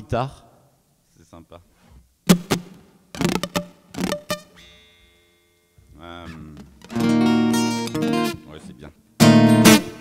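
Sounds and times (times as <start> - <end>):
guitar strums and chords: 2.3 - 5.2, 6.2 - 10.0.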